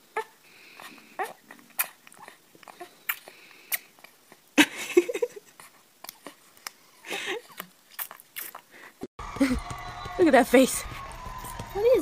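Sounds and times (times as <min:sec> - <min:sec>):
baby sucking wet smacks: 0:00.8 - 0:04.4, 0:05.6 - 0:06.8, 0:07.4 - 0:08.7
baby squeaky grunts: 0:01.2 - 0:02.0.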